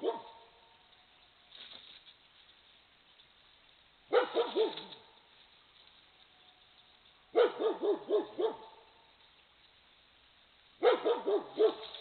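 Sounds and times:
fox barking hoarsely: 0.0s - 0.3s, 4.1s - 5.0s, 7.3s - 8.8s, 10.8s - 11.9s.

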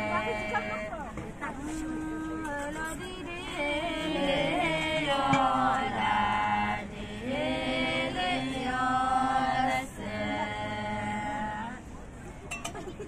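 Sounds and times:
voices singing unaccompanied: 0.0s - 11.9s.

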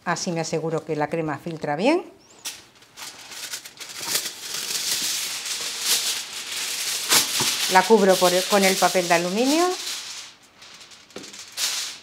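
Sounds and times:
aluminium foil crinkling: 2.3s - 12.0s.

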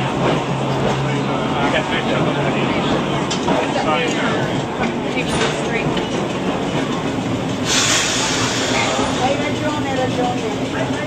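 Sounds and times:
tram rumbling and rattling: 0.0s - 11.0s.

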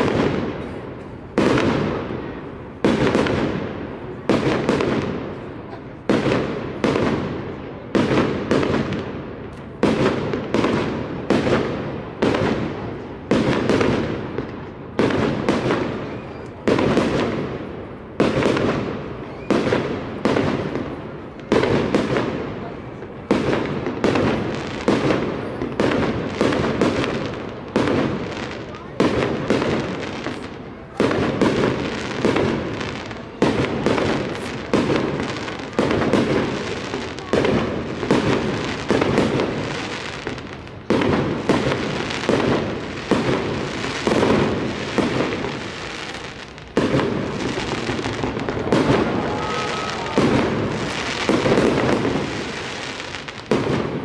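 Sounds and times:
fireworks bursting with echo: 0.0s - 54.0s.

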